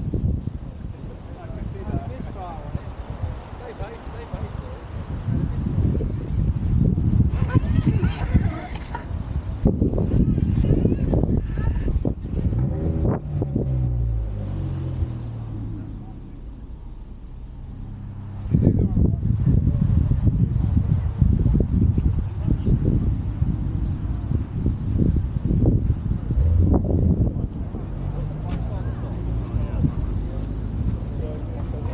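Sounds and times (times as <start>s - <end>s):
car engine revving and idling: 9.7s - 31.9s.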